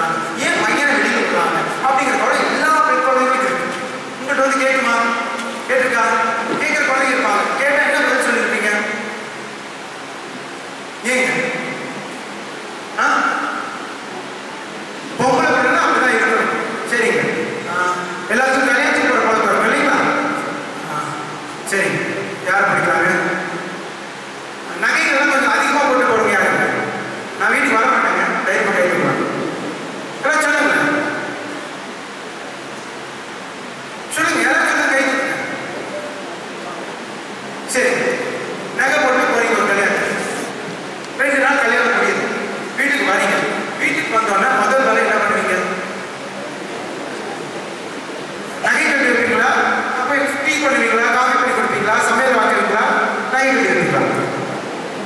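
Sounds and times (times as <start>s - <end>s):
man speaking into a microphone: 0.0s - 9.4s, 11.0s - 11.9s, 13.0s - 13.9s, 15.2s - 23.8s, 24.6s - 31.5s, 34.1s - 37.0s, 37.6s - 46.6s, 48.5s - 54.6s
steady hiss: 0.0s - 55.0s.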